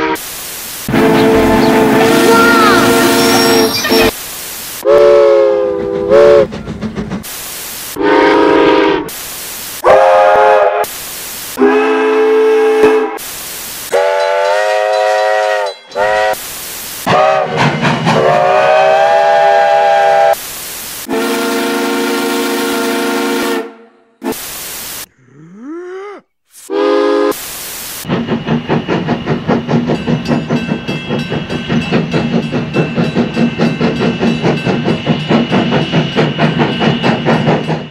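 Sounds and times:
steam locomotive whistle blasts: 0.0 - 0.2, 0.9 - 4.2, 4.8 - 6.5, 7.9 - 9.2, 9.8 - 10.9, 11.6 - 13.3, 13.9 - 20.4, 21.0 - 24.4, 26.6 - 27.4
steam locomotive exhaust beats: 0.0 - 4.2, 4.8 - 24.4, 28.0 - 37.9
steam hiss: 5.5 - 11.6, 13.1 - 14.2, 15.9 - 21.2, 26.5 - 29.9.

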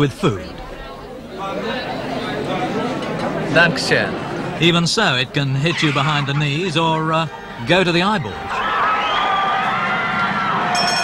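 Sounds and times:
fairground crowd noise: 0.0 - 11.0.

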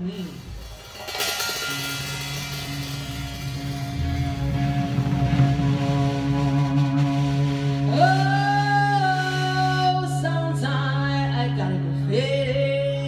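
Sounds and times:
drum kit crash: 0.3 - 9.0
live band holding sustained chord: 0.6 - 13.0.

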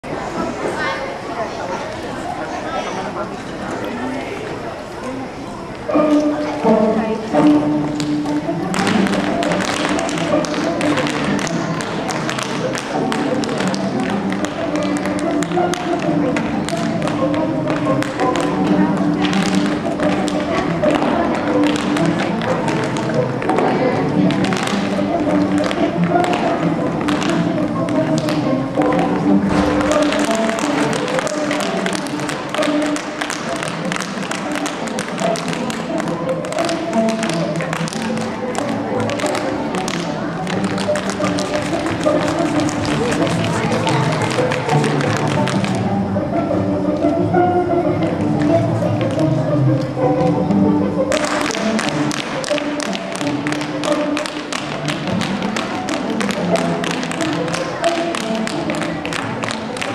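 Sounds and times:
backing music: 5.8 - 59.9
tap shoes striking stage floor: 6.0 - 45.9, 48.0 - 50.4, 51.0 - 59.9.

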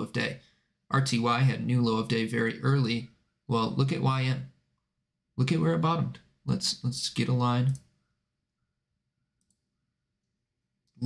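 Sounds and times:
computer mouse click: 9.4 - 9.7.

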